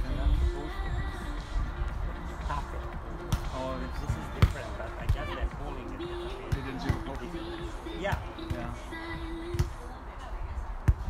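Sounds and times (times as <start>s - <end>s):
volleyball slaps: 3.3s - 3.6s, 4.4s - 5.2s.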